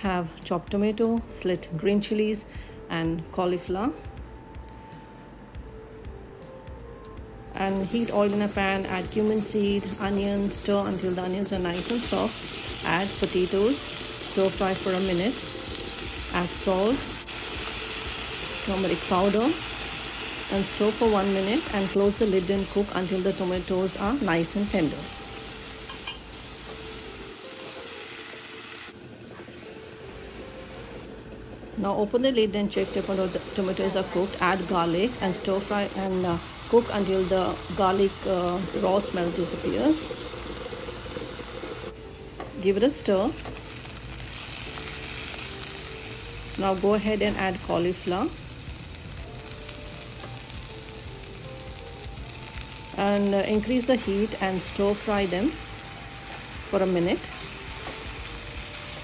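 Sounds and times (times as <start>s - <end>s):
potatoes sizzling in hot oil: 7.6s - 31.0s, 32.7s - 59.0s.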